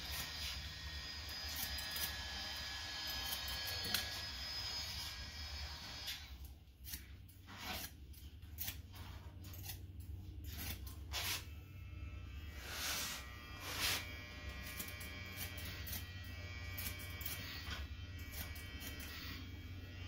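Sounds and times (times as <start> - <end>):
scissors snipping hair: 6.8 - 7.1, 7.7 - 11.0, 14.6 - 16.1, 16.7 - 19.4.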